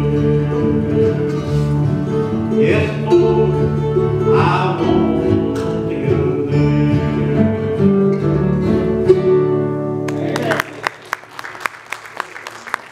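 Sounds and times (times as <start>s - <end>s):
bluegrass band playing: 0.0s - 10.7s
audience clapping: 10.0s - 12.9s.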